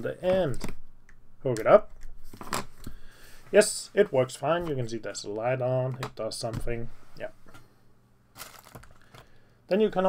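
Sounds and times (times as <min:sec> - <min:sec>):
person speaking: 0:00.0 - 0:00.8, 0:01.4 - 0:02.0, 0:03.5 - 0:07.4, 0:09.7 - 0:10.0.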